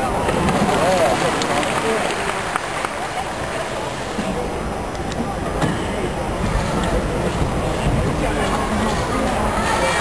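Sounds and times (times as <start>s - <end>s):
murmuring voices: 0.0s - 10.0s
steady background hum: 0.0s - 10.0s.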